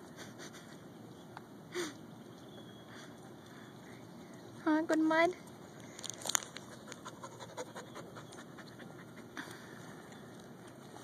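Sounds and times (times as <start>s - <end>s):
dog panting: 6.7s - 9.6s.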